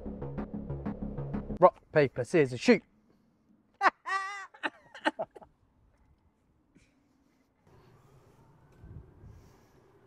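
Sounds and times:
high-pitched cry: 0:03.8 - 0:04.7
men laughing: 0:03.8 - 0:05.6.

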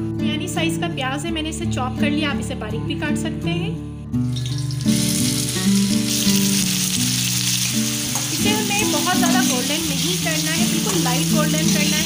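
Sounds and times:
background music: 0:00.0 - 0:12.0
onions sizzling in hot oil: 0:04.3 - 0:12.0.

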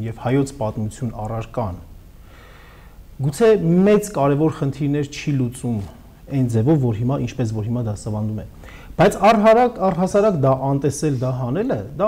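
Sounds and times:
man speaking: 0:00.0 - 0:02.0, 0:03.2 - 0:12.0
soft intake of breath: 0:02.1 - 0:03.1, 0:08.6 - 0:09.0.

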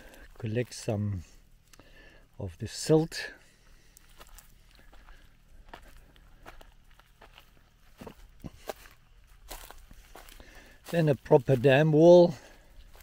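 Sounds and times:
footsteps on dry leaves and soil: 0:00.0 - 0:01.6, 0:02.7 - 0:13.0.

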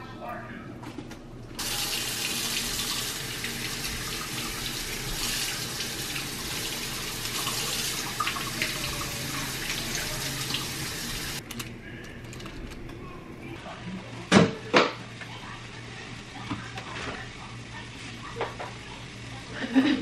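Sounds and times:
faucet running into steel sink: 0:01.6 - 0:11.4.

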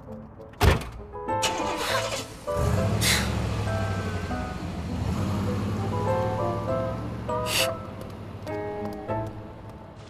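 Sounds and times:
car engine starting and rumbling: 0:01.4 - 0:08.7.

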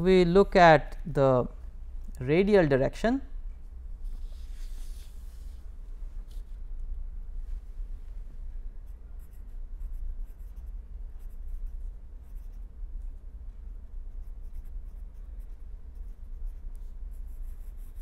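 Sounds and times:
steady low hum: 0:00.0 - 0:18.0
pen scratching on paper: 0:08.8 - 0:13.1, 0:14.1 - 0:18.0.

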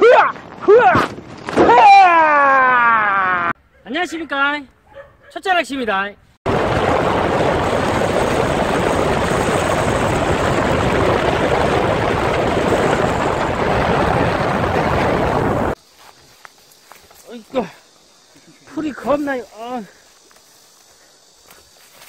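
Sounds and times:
wind and road noise: 0:06.5 - 0:17.2.

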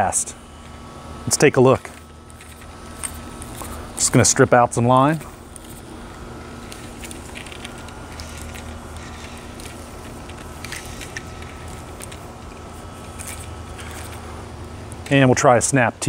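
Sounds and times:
faint machine-like tone: 0:00.0 - 0:16.0
low background hum: 0:00.0 - 0:16.0.

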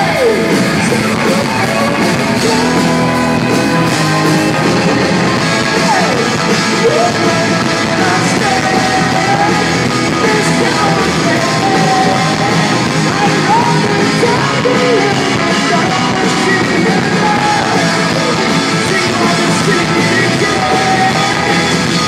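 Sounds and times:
distorted electric guitars: 0:00.0 - 0:22.0
drums: 0:00.0 - 0:22.0
male lead vocal: 0:00.0 - 0:22.0.

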